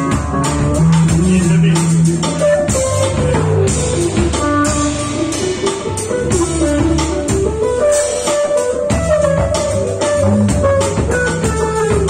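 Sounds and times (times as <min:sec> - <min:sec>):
drum and cymbal strikes: 0:00.0 - 0:12.0
electric bass line: 0:00.0 - 0:12.0
electric guitar melody: 0:00.0 - 0:12.0.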